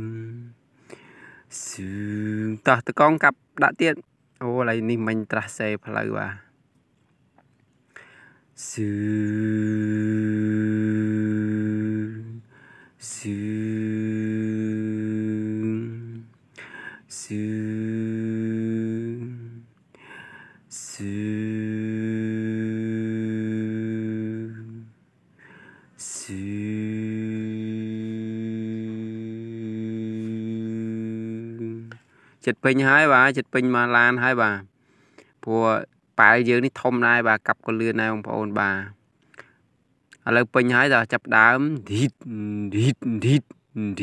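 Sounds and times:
man humming engine imitation: 0.0 - 0.5, 8.7 - 16.3, 20.8 - 24.9, 26.0 - 32.0.

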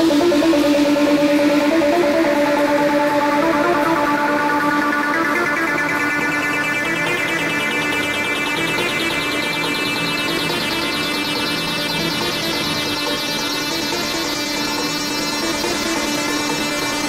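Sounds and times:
sustained synthesizer note: 0.0 - 17.0.

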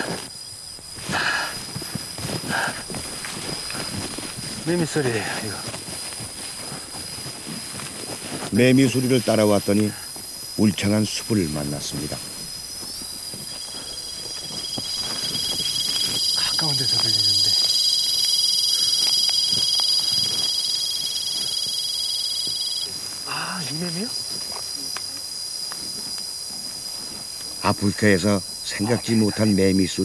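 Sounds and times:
cicadas buzzing: 0.0 - 30.0.

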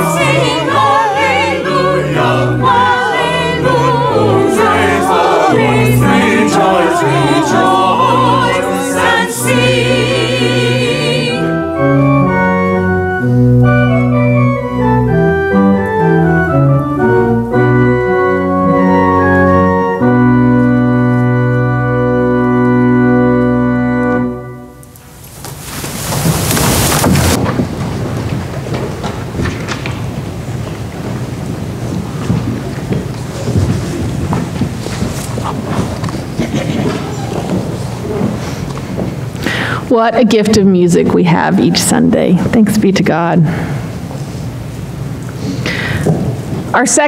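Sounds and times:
church organ chords: 0.0 - 25.2.

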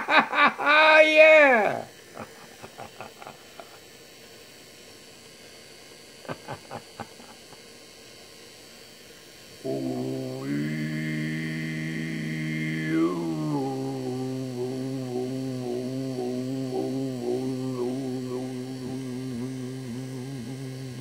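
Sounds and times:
low voice chanting held note: 9.6 - 21.0.

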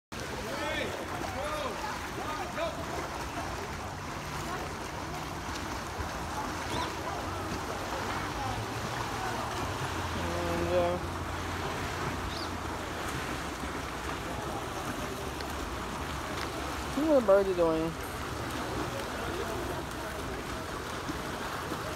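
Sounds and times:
rushing water with low hum: 0.1 - 21.9
birds chirping: 6.6 - 7.0, 12.2 - 12.6.

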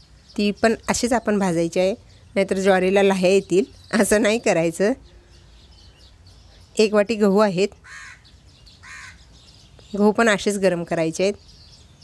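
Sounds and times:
crow cawing: 7.8 - 9.2.

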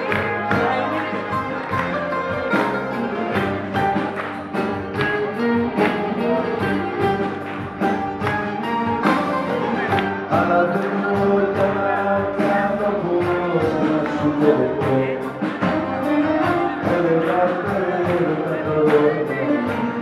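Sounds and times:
live band playing popular song: 0.0 - 20.0
steady percussive beat: 0.0 - 20.0
violin: 0.0 - 20.0.

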